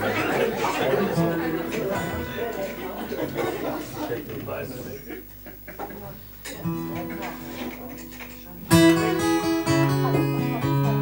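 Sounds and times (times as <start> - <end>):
acoustic guitar strumming: 0.0 - 3.9, 6.5 - 11.0
audience laughing: 0.0 - 6.1
audience chatter: 0.0 - 11.0.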